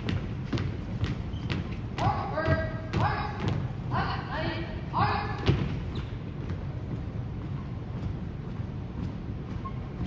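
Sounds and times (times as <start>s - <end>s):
marching footsteps on wooden floor: 0.0s - 4.0s, 5.3s - 10.0s.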